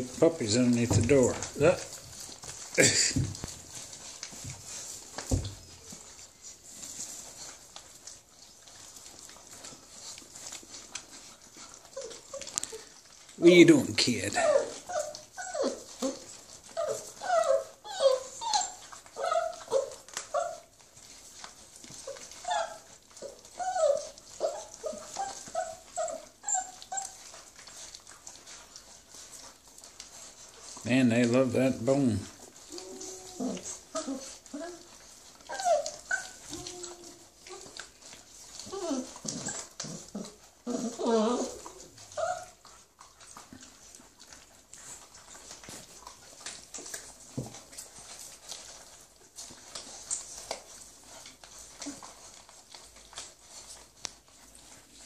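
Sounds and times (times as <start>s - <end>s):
chewing clicks and scuffling: 0.0s - 55.0s
puppies whining and yipping: 0.0s - 55.0s.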